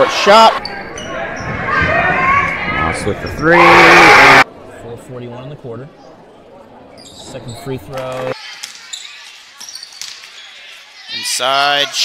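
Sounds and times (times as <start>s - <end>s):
murmur of crowd and players: 0.0s - 12.0s.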